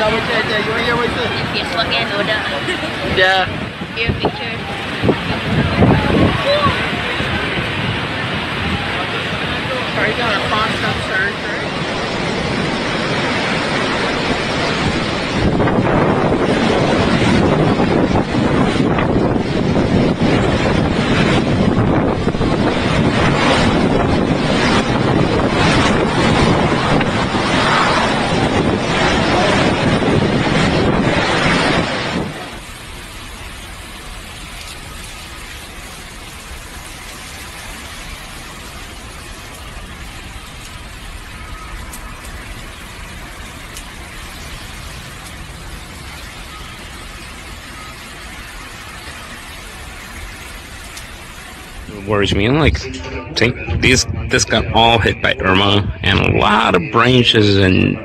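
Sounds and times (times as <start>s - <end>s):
strong wind and driving rain: 0.0s - 58.0s.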